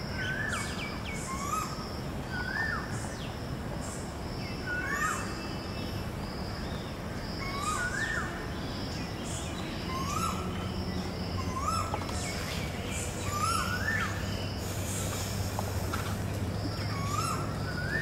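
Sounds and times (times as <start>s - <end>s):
outdoor background hum: 0.0s - 18.0s.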